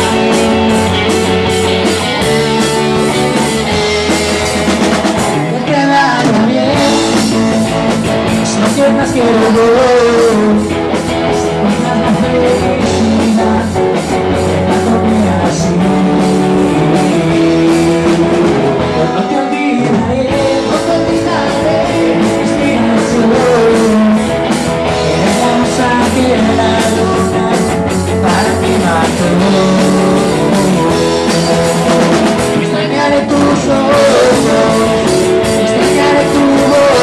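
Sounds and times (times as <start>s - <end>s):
bass guitar: 0.0s - 37.0s
drum kit: 0.0s - 37.0s
electric guitars: 0.0s - 37.0s
rock band playing live: 0.0s - 37.0s.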